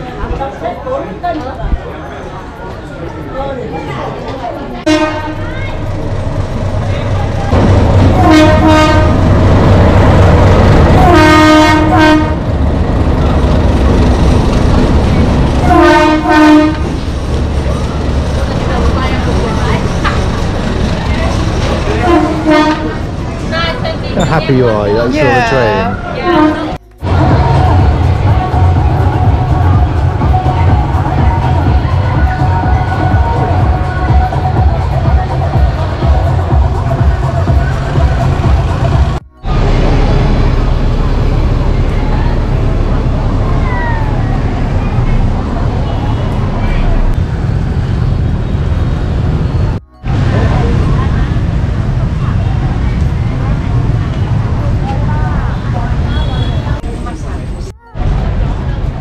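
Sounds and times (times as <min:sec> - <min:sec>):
voices of passers-by: 0:00.0 - 0:59.0
train horn: 0:04.9 - 0:05.4, 0:08.1 - 0:09.3, 0:11.0 - 0:12.5, 0:15.6 - 0:17.0, 0:21.9 - 0:23.1, 0:26.2 - 0:27.3
constant rumble: 0:26.0 - 0:59.0.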